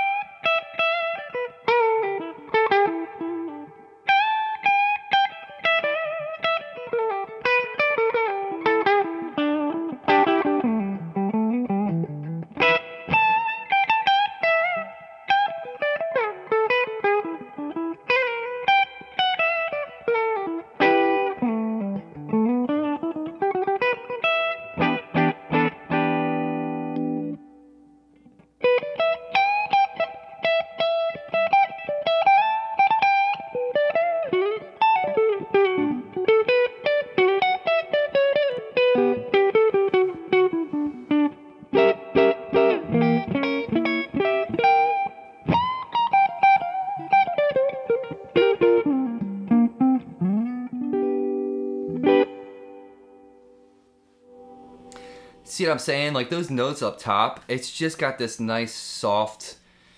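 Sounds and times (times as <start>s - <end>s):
guitar chord ringing: 0.0s - 56.8s
clean electric guitar lines: 0.0s - 59.9s.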